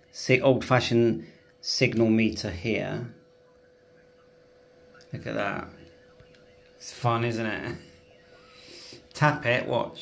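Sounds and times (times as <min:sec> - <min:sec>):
faint thin steady tone: 0:00.0 - 0:10.0.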